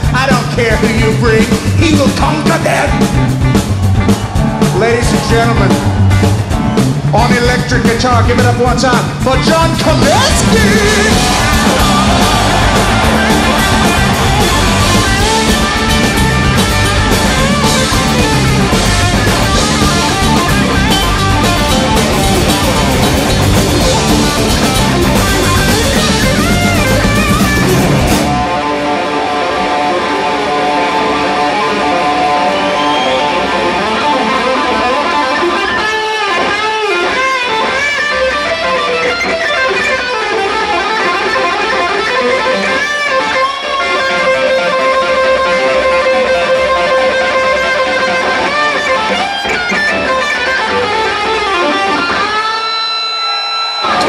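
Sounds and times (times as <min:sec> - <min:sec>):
band playing: 0:00.0 - 0:54.0
electric guitar solo with string bends: 0:09.7 - 0:54.0.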